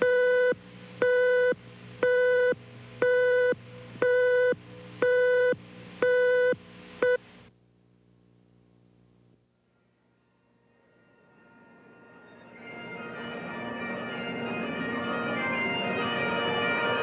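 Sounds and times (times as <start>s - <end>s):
mid-pitched countdown beeps: 0.0s - 7.2s.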